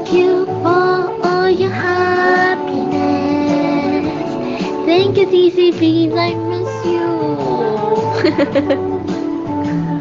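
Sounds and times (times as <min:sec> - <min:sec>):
woman singing: 0:00.0 - 0:08.5
backing music track: 0:00.0 - 0:10.0.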